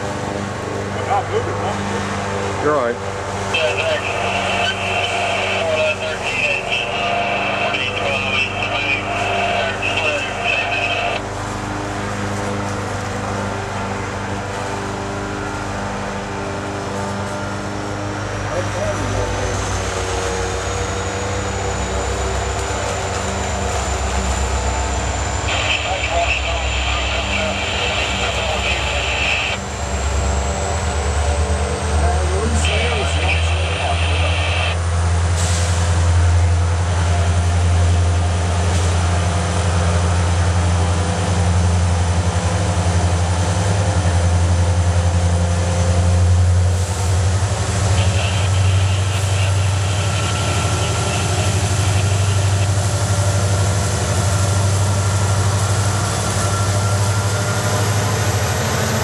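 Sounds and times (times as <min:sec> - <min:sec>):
diesel locomotive engine rumbling: 0:00.0 - 0:59.0
thin high whine: 0:03.5 - 0:11.2, 0:21.8 - 0:29.6, 0:47.8 - 0:53.0.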